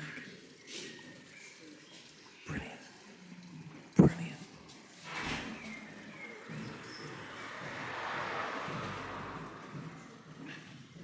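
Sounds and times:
birds chirping: 0.0 - 11.0
open-air ambience hiss: 0.0 - 11.0.

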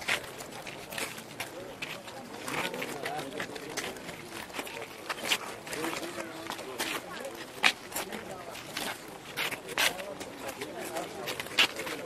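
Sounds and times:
men's voices murmuring: 0.0 - 12.0.

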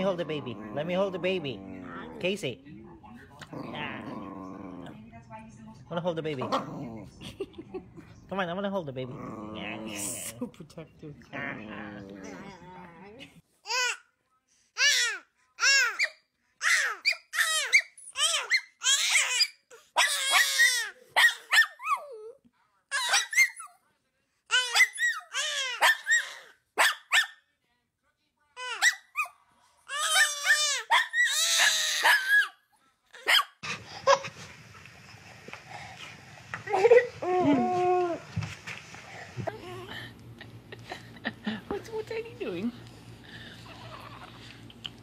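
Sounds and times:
baby squealing and giggling: 14.8 - 22.2, 29.9 - 32.5.

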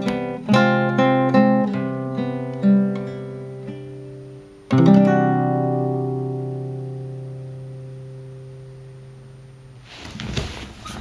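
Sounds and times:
classical guitar chord ringing: 0.0 - 9.8.

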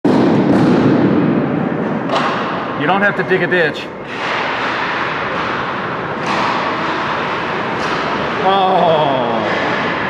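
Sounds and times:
hockey sticks knocking puck: 0.1 - 1.0, 2.0 - 3.1, 4.1 - 10.0.

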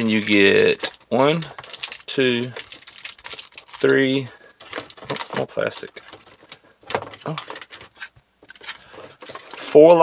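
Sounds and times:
foil packs crinkling: 0.0 - 10.0.

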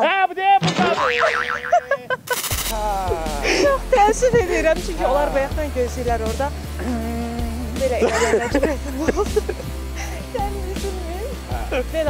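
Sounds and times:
cartoon boing sound effect: 0.7 - 1.9
short burst of noise: 2.3 - 2.8.

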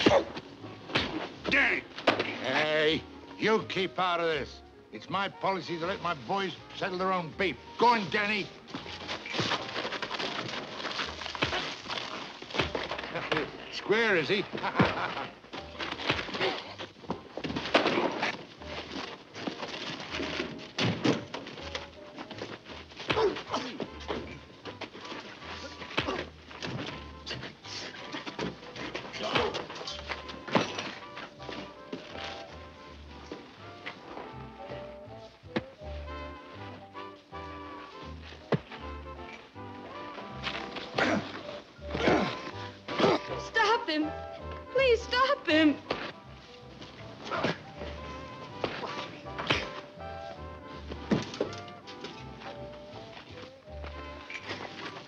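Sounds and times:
punches and thuds: 0.0 - 2.5, 23.0 - 24.4, 25.8 - 27.5, 48.6 - 49.9
scuffling: 5.5 - 55.0.

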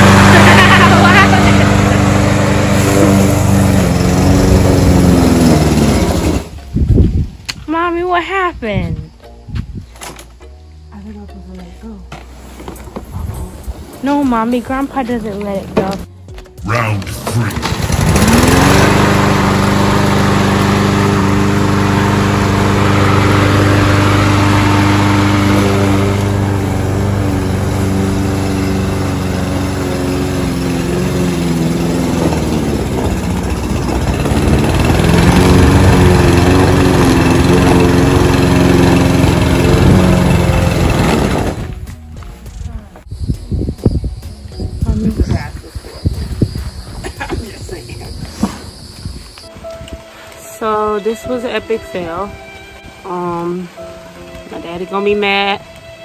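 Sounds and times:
lawn mower engine running: 0.0 - 6.9, 14.0 - 42.7.

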